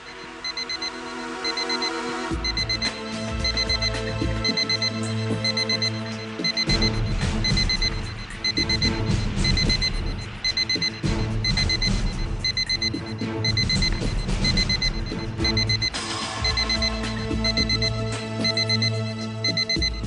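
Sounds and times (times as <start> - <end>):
electronic alarm beeping: 0.0 - 20.0
tense background music: 0.0 - 20.0.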